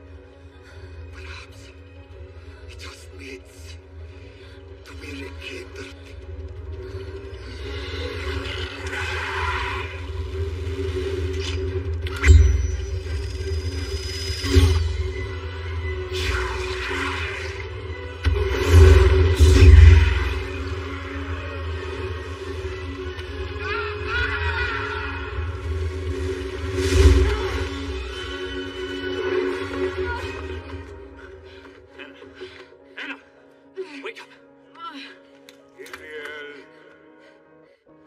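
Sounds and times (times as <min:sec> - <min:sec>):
dark music: 0:00.0 - 0:38.0.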